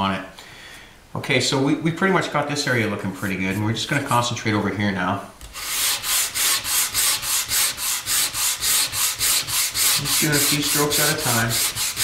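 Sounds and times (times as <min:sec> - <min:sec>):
sandpaper rubbing on wood: 0:05.5 - 0:12.0.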